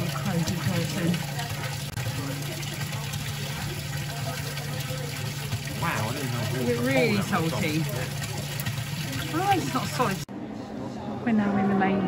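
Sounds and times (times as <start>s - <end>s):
water pouring into stone basin: 0.0s - 10.3s.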